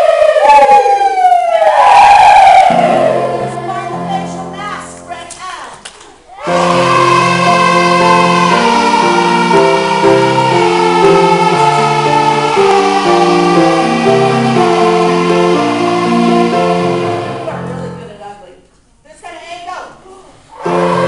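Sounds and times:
children's choir singing: 0:00.0 - 0:04.8, 0:06.3 - 0:17.9, 0:20.5 - 0:21.0
piano accompaniment: 0:00.0 - 0:05.4, 0:06.4 - 0:18.4, 0:20.6 - 0:21.0.

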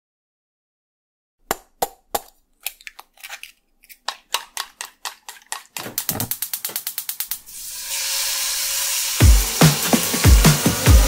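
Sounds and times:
sharp dry clicks: 0:02.7 - 0:07.4
hissing swell: 0:07.4 - 0:10.2
music: 0:08.0 - 0:11.0.

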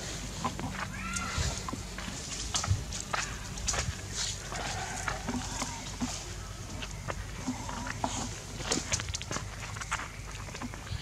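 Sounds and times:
monkeys moving over dry leaves: 0:00.0 - 0:11.0.

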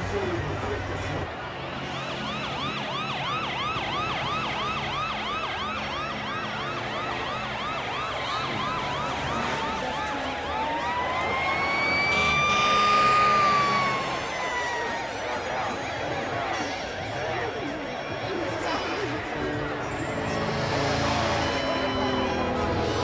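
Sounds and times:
emergency vehicle siren: 0:00.0 - 0:23.0.

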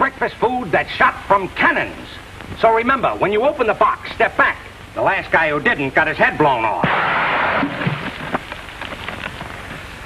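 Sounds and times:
old film soundtrack hiss: 0:00.0 - 0:10.0.

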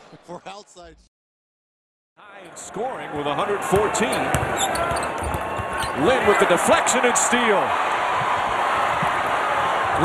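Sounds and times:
arena crowd noise: 0:02.2 - 0:10.0.

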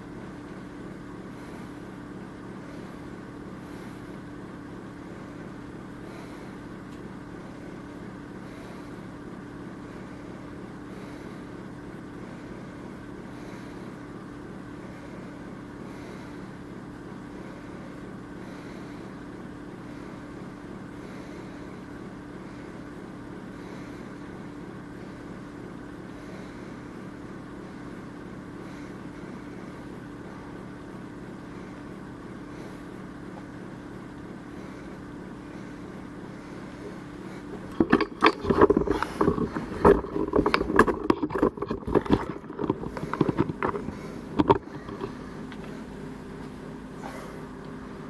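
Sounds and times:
low hum with hiss: 0:00.0 - 0:48.0
handheld camera knocks and rustles: 0:37.6 - 0:45.2.

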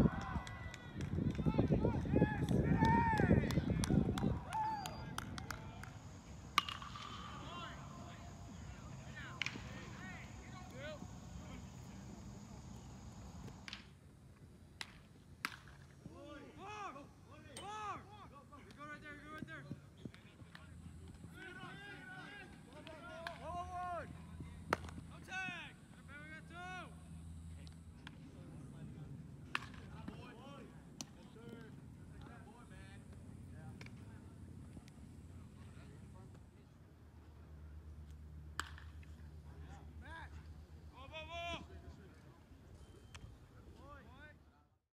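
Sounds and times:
faint distant voices calling: 0:00.0 - 0:13.7
quiet outdoor ambience: 0:00.0 - 0:44.8
baseball cracks: 0:02.4 - 0:14.0, 0:14.8 - 0:15.9, 0:24.7 - 0:25.1, 0:29.4 - 0:30.2, 0:38.0 - 0:39.2.

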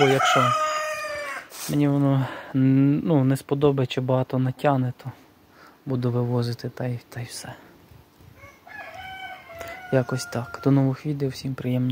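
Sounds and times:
rooster crowing: 0:00.0 - 0:01.6, 0:08.4 - 0:11.0.

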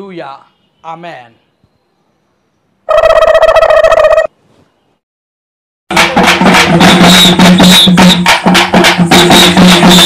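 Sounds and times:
music with drums and wood block: 0:05.9 - 0:10.0.

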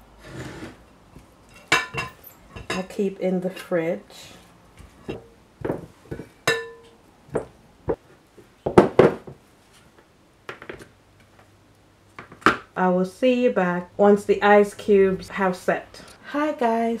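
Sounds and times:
glass ringing: 0:06.5 - 0:07.0.

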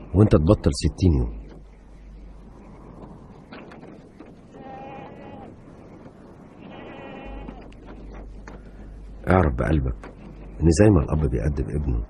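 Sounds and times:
sheep bleating: 0:04.5 - 0:05.5, 0:06.6 - 0:07.7.

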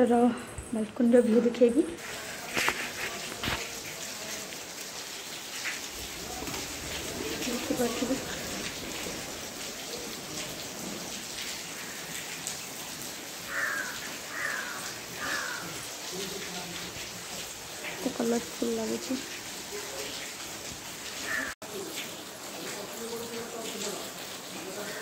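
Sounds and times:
rain on roofs and trees: 0:00.0 - 0:25.0.

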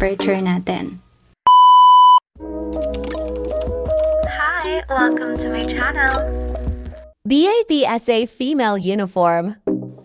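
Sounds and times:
loud electronic beep: 0:01.5 - 0:02.2
upbeat intro music: 0:02.4 - 0:07.2.

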